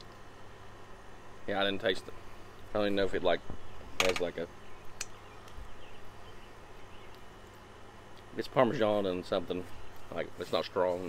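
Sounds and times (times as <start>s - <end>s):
low steady hum: 0.0s - 11.0s
faint bird chirps: 3.3s - 7.4s.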